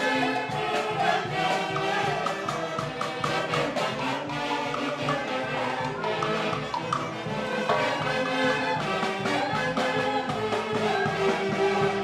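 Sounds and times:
drums: 0.0s - 12.0s
saxophones: 0.0s - 12.0s.

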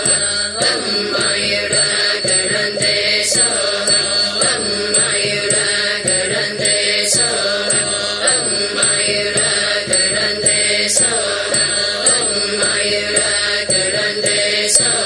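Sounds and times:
music with steady beat: 0.0s - 15.0s
voices chanting: 0.0s - 15.0s.

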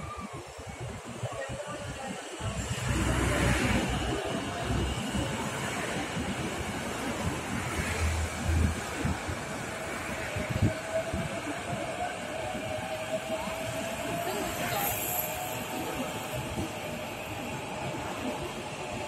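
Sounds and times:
electric train rumbling on track: 0.0s - 19.0s.

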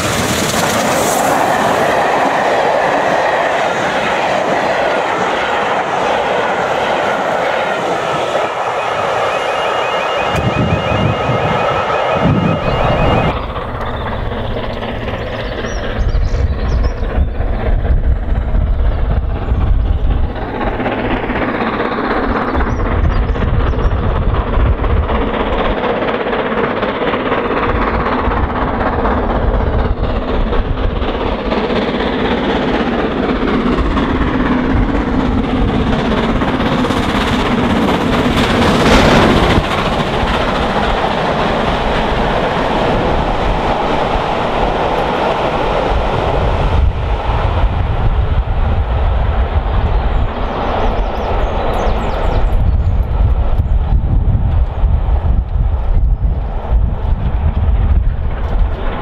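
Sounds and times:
steam locomotive exhaust: 0.0s - 59.0s
train wheels on rails: 0.0s - 59.0s.

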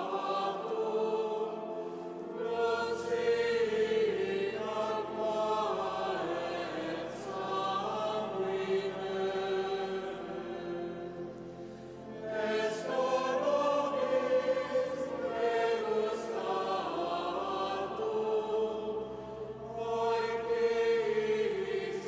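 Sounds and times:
choir chanting: 0.0s - 22.0s.

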